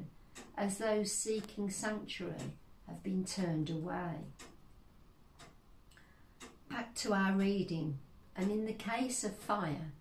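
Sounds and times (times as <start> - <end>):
woman speaking: 0.0 - 4.4, 6.7 - 10.0
clock ticking: 0.0 - 10.0.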